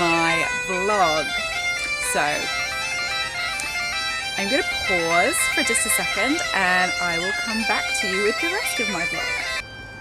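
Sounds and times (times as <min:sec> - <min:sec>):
person speaking: 0:00.0 - 0:02.5, 0:04.4 - 0:09.4
bagpipes playing: 0:00.0 - 0:10.0.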